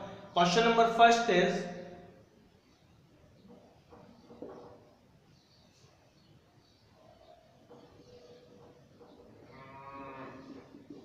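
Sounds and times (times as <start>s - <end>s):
cow mooing: 9.4s - 10.6s.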